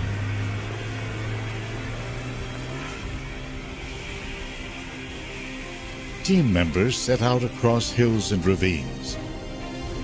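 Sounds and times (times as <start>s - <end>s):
snowmobile engine humming: 0.0s - 10.0s.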